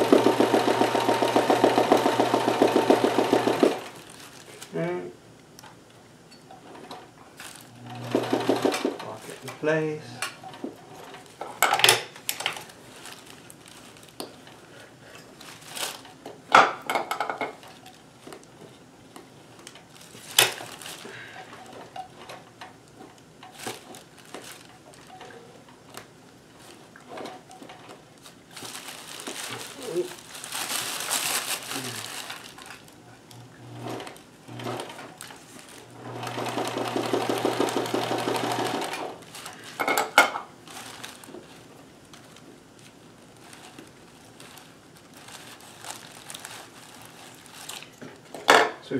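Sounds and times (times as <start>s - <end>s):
sewing machine stitching: 0.0s - 4.0s, 7.8s - 9.2s, 33.7s - 35.0s, 35.9s - 39.1s.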